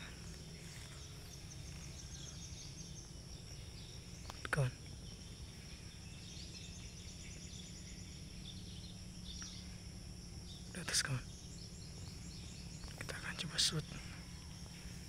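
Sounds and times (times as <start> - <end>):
faint bird chirps: 0.0 - 15.0
high insect drone: 0.0 - 15.0
low steady rumble: 0.0 - 15.0.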